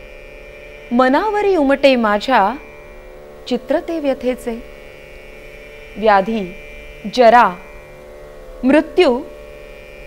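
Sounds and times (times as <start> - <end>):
hum of held tones: 0.0 - 10.0
woman's drawn-out voice: 0.9 - 2.6, 3.5 - 4.7, 6.0 - 7.6, 8.6 - 9.3.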